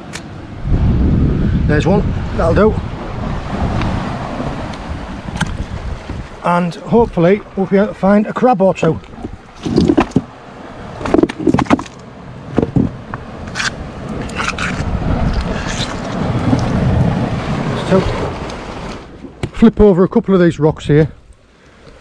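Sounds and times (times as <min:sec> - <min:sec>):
wind rumble on microphone: 0:00.0 - 0:08.0, 0:09.0 - 0:19.5
knocks and scrapes on rocks: 0:08.9 - 0:10.3, 0:11.0 - 0:16.9.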